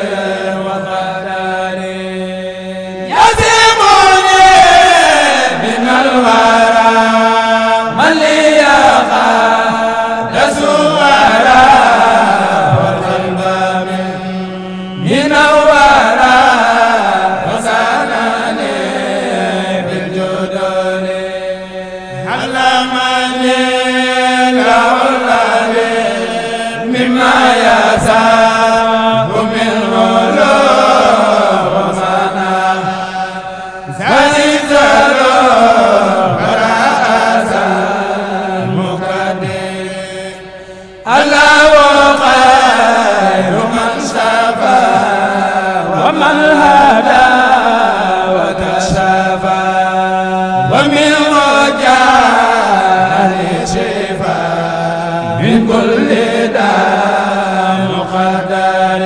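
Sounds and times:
man chanting unaccompanied: 0.0 - 59.0.

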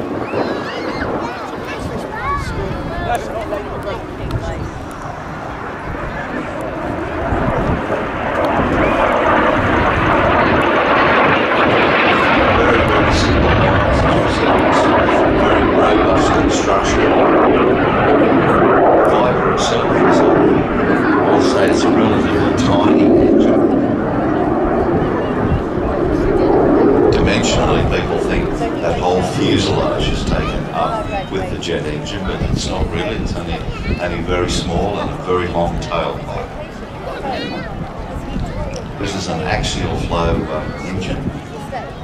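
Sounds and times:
jet aircraft passing: 0.0 - 42.0.

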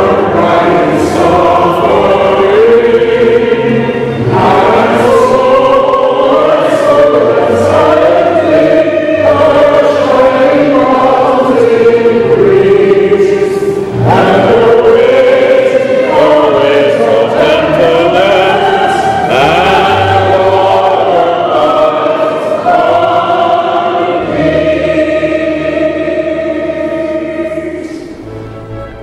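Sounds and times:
congregation singing a hymn: 0.0 - 29.0
low accompaniment: 0.0 - 29.0.

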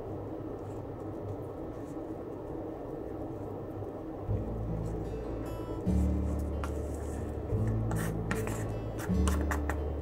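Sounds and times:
background music low notes: 3.7 - 10.0.

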